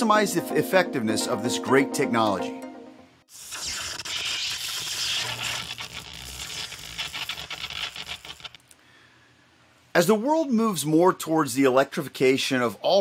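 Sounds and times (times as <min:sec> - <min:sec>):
hissing scratchy noise: 0:03.3 - 0:08.6.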